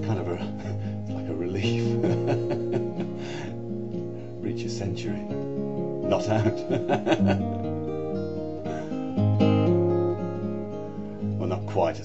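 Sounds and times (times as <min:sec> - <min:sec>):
fingerpicked acoustic guitar: 0:00.0 - 0:12.0.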